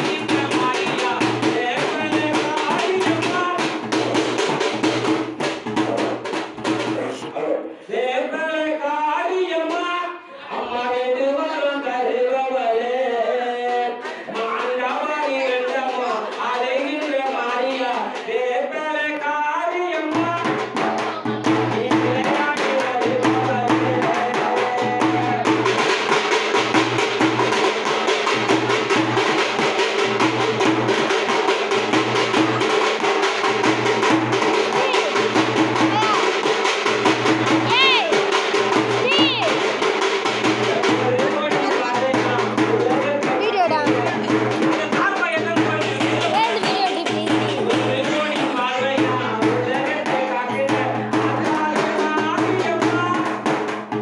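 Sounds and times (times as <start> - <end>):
voice singing or chanting: 0.0 - 4.6, 5.7 - 25.9, 32.0 - 53.4
frame drum beaten with a stick: 0.0 - 7.3, 20.0 - 54.0.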